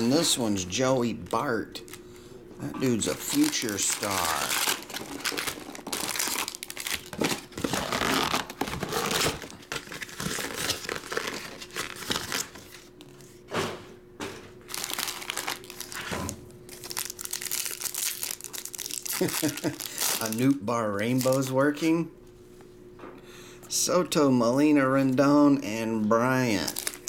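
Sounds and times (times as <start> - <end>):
foil wrappers crinkling: 0.0 - 12.9, 14.7 - 21.6, 26.4 - 27.0.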